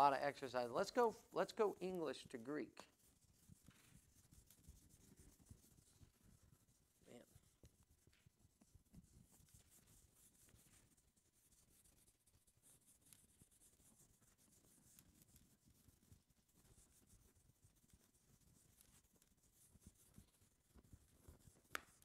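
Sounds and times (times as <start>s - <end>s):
eraser rubbing whiteboard: 0.9s - 22.0s.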